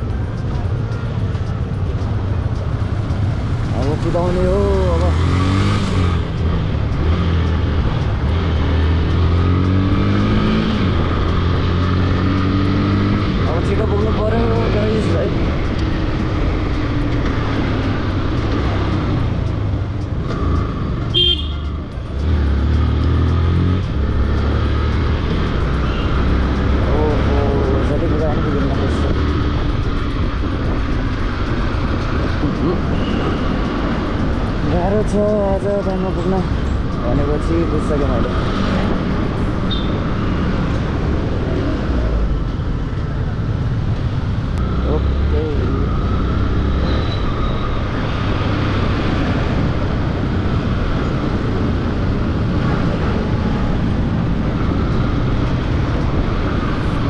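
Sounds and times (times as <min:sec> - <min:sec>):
motorcycle engine accelerating: 0:01.4 - 0:16.0, 0:16.6 - 0:36.2.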